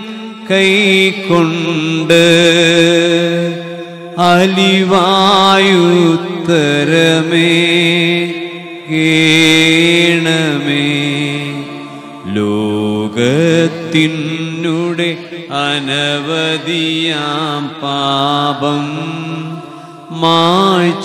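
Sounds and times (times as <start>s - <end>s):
person chanting a liturgical melody: 0.0s - 21.0s.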